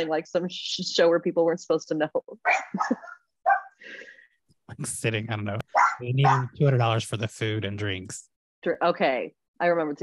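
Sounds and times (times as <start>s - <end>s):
dog barking: 2.4s - 3.8s, 5.7s - 6.6s.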